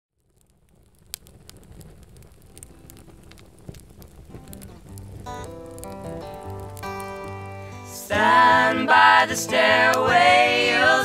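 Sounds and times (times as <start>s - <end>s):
campfire crackling and popping: 0.1s - 11.0s
guitar notes: 4.6s - 11.0s.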